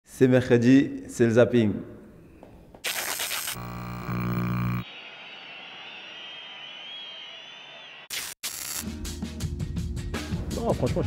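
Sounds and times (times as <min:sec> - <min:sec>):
static hiss: 0:02.8 - 0:04.8
low electric buzz: 0:03.0 - 0:04.8.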